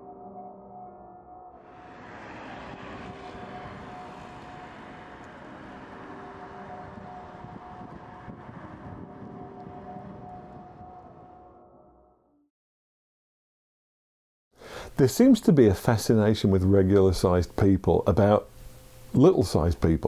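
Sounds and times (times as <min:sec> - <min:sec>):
ambient music drone: 0:00.0 - 0:12.4
rumbling roar: 0:01.6 - 0:11.4.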